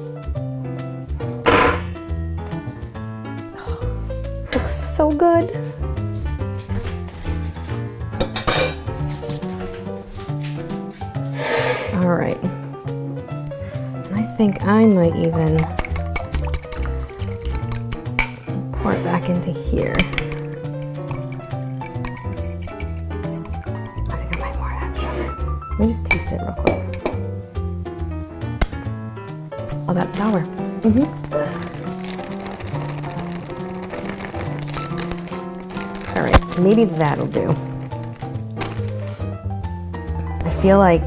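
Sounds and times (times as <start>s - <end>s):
background music: 0.0s - 41.0s
utensil clinking against glass bowl: 14.2s - 18.6s, 19.8s - 24.5s.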